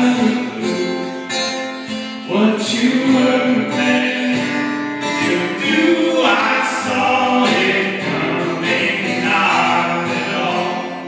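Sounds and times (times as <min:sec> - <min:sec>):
man singing: 0:00.0 - 0:01.6, 0:02.2 - 0:11.0
strummed acoustic guitar: 0:00.0 - 0:11.0.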